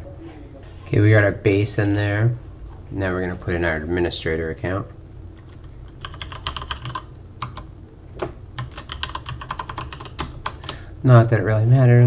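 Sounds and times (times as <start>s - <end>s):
typing on computer keyboard: 5.6s - 7.7s, 8.6s - 10.8s.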